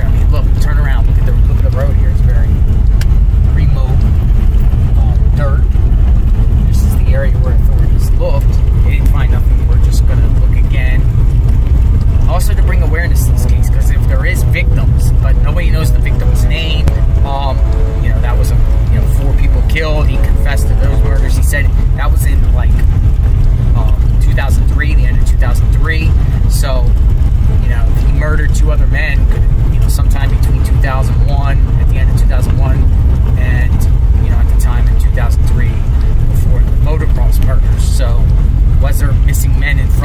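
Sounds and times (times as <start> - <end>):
man talking: 0.0 - 2.7, 3.3 - 11.3, 12.1 - 40.0
car road and engine rumble: 0.0 - 40.0.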